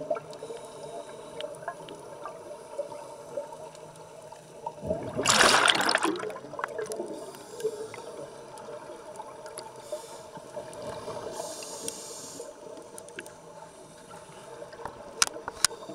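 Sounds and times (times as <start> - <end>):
underwater background: 0.0 - 15.9
faint clicks: 10.6 - 15.9
diver breathing through regulator: 11.2 - 12.6.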